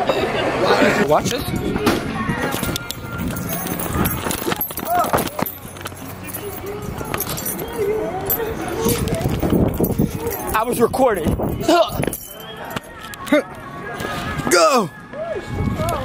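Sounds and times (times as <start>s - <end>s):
people talking indistinctly: 0.0s - 15.0s.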